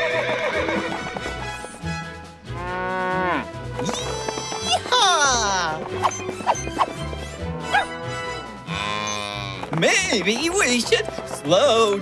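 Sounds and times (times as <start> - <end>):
horse whinny: 0.0 - 1.2, 2.5 - 7.0, 7.7 - 9.7
cartoon background music: 0.0 - 12.0.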